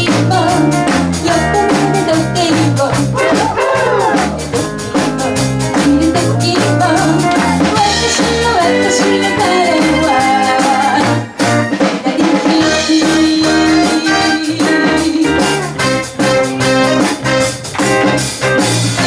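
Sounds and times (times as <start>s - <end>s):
live pop band playing: 0.0s - 19.0s.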